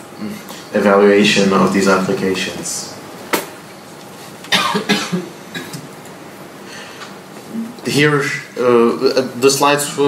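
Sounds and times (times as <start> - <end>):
person coughing: 4.5 - 5.9.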